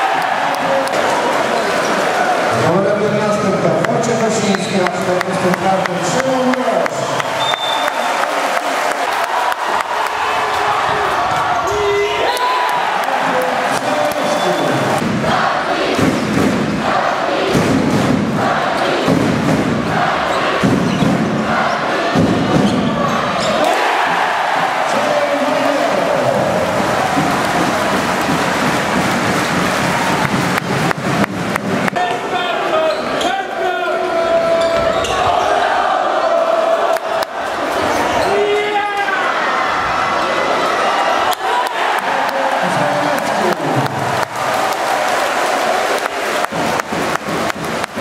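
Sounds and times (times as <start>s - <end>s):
arena crowd noise: 0.0s - 48.0s
crowd chanting rhythmically: 14.5s - 30.2s, 34.8s - 38.2s.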